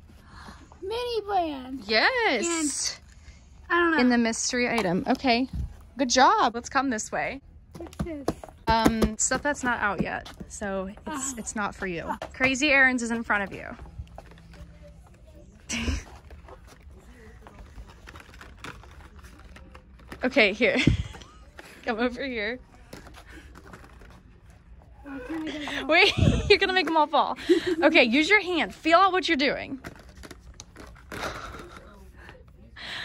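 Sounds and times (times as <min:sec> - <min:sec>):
low background hum: 0:00.0 - 0:33.0.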